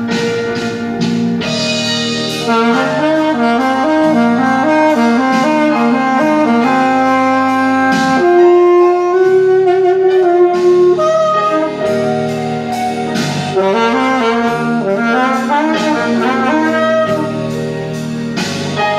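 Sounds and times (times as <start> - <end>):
alto saxophone blues solo: 0.0 - 18.9
backing track: 0.0 - 18.9.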